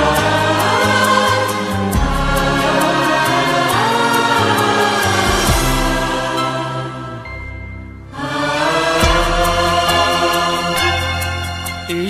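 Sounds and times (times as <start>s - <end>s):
choir-like chorus: 0.0s - 11.9s.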